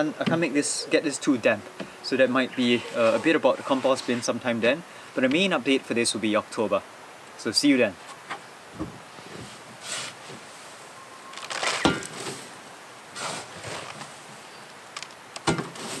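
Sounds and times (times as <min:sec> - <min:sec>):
scraping and rustling: 0:02.6 - 0:04.5, 0:09.2 - 0:14.3.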